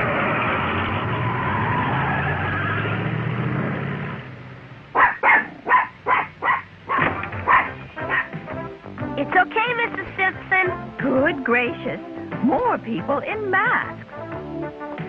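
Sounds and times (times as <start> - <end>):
small dog yapping: 5.0 - 8.4
background music: 6.8 - 15.0.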